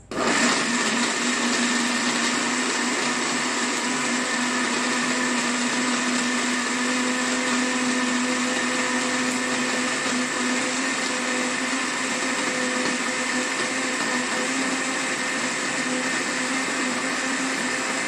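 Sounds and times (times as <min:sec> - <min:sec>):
blender motor whirring: 0:00.0 - 0:18.0.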